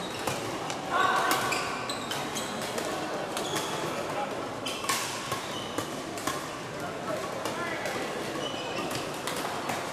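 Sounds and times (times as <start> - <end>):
shoes squeaking on court floor: 0.0 - 6.0, 8.2 - 9.4.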